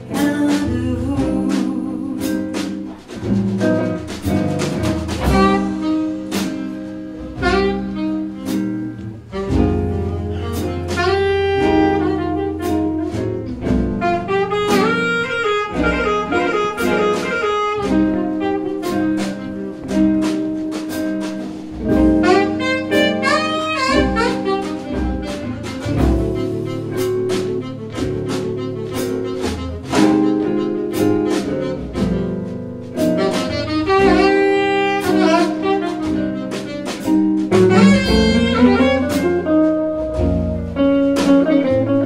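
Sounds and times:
acoustic guitar rhythm: 0:00.0 - 0:42.0
bass: 0:00.0 - 0:42.0
drum kit: 0:00.0 - 0:42.0
saxophone solo: 0:05.2 - 0:21.2, 0:21.8 - 0:42.0.

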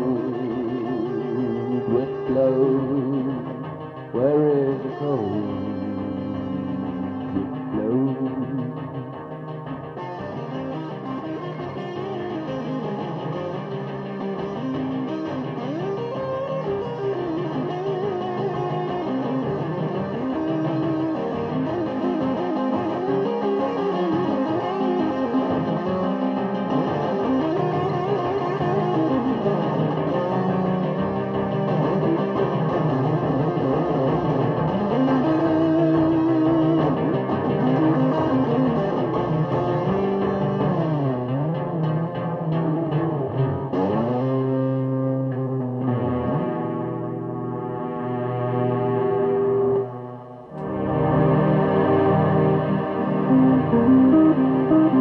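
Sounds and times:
instrumental rock with effected guitar: 0:00.0 - 0:55.0.

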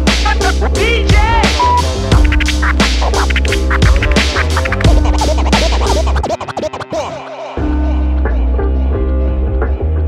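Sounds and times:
vinyl record scratching: 0:00.0 - 0:07.5
hip-hop beat: 0:00.0 - 0:10.0.

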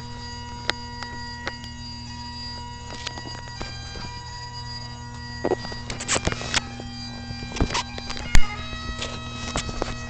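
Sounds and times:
bagpipes drone: 0:00.0 - 0:10.0
sharp clicks: 0:05.4 - 0:06.8, 0:07.4 - 0:10.0.

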